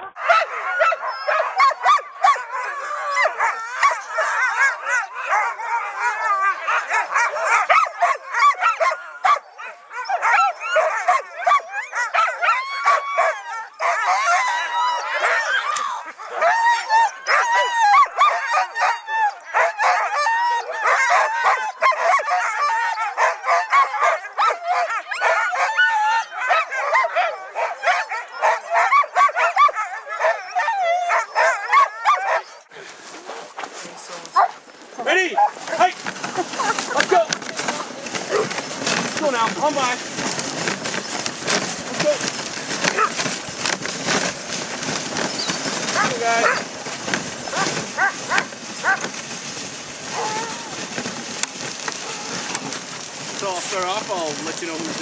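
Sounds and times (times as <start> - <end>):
sled dogs barking and yipping: 0.0 - 55.0
sled hissing on snow: 45.0 - 50.8.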